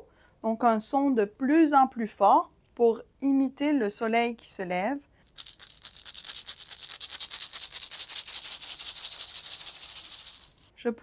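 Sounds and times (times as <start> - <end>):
maraca rattling: 5.3 - 10.7.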